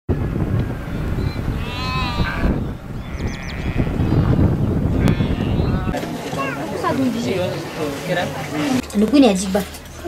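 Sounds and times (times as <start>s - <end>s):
sheep bleating: 1.6s - 4.3s, 4.9s - 6.0s.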